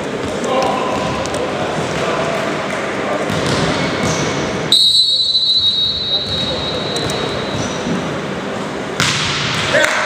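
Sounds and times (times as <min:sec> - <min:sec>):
sports hall voices: 0:00.0 - 0:10.0
loud high whistle blast: 0:04.7 - 0:07.5.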